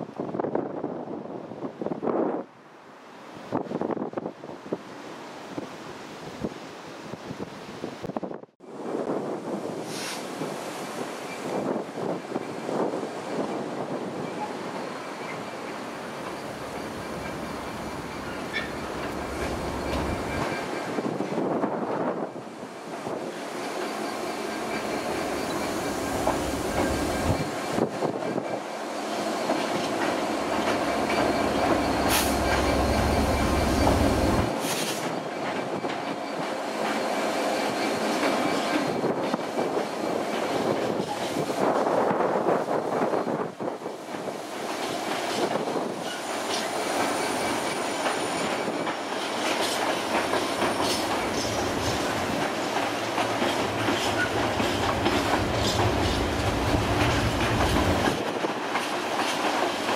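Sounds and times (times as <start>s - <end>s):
diesel locomotive engine: 8.7s - 59.9s.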